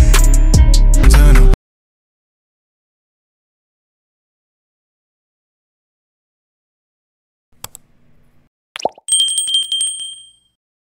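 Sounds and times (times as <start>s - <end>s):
small bell trilling: 9.1s - 10.6s.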